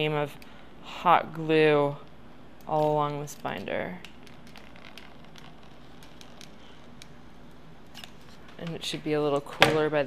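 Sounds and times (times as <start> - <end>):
glue gun clicks and crackles: 4.0 - 7.1.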